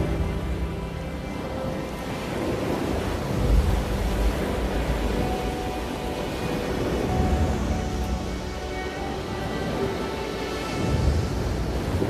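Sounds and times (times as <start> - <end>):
ocean surf: 0.0 - 12.0
soft background music: 0.0 - 12.0.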